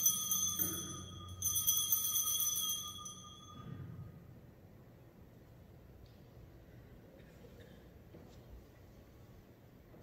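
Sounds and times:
altar bell ringing: 0:00.0 - 0:04.3.

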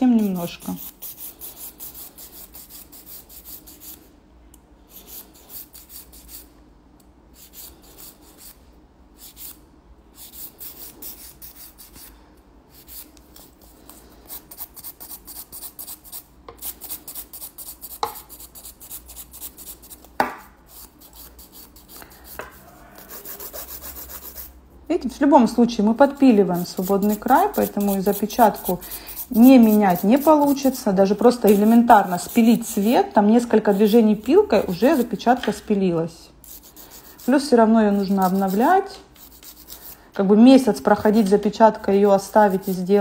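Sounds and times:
nail file rasping on fingernail: 0:00.2 - 0:04.0, 0:04.9 - 0:06.5, 0:07.4 - 0:08.6, 0:09.2 - 0:09.6, 0:10.2 - 0:12.1, 0:12.7 - 0:20.1, 0:20.7 - 0:24.5, 0:26.3 - 0:33.0, 0:34.6 - 0:35.2, 0:36.4 - 0:40.0, 0:42.2 - 0:42.9.

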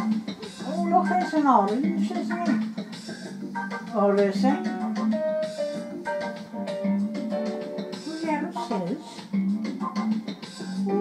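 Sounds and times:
guitar music from television: 0:00.0 - 0:11.0.

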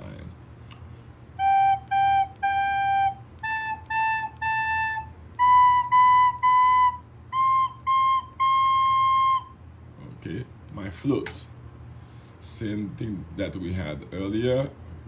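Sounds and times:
recorder playing notes: 0:01.4 - 0:09.6.

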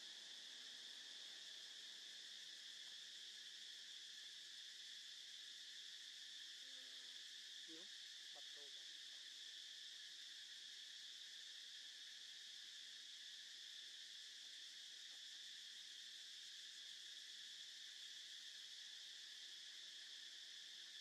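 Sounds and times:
insects buzzing: 0:00.0 - 0:21.0.

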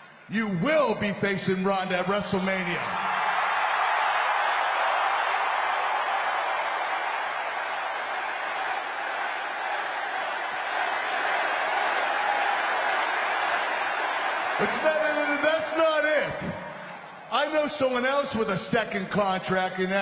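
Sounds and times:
crowd cheering and applauding: 0:02.6 - 0:18.3.

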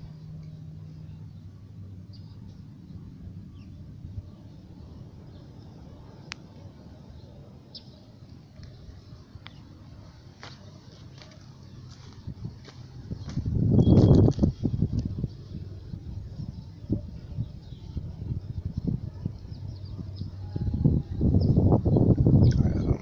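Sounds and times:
light crackles: 0:06.0 - 0:06.7
rustling of dry branches: 0:08.2 - 0:15.9.

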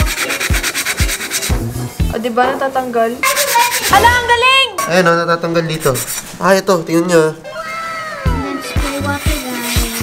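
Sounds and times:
sponge scrubbing rust off metal pot: 0:00.0 - 0:04.0, 0:08.6 - 0:10.0
background music with steady beat: 0:00.0 - 0:05.0, 0:07.4 - 0:10.0.

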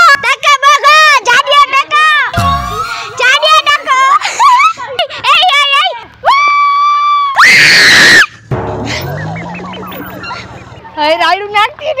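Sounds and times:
high-pitched screams: 0:02.4 - 0:04.0, 0:06.2 - 0:08.4.

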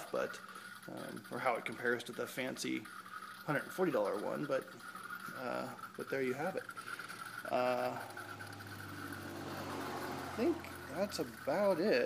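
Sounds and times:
steady low hum: 0:00.0 - 0:11.5.

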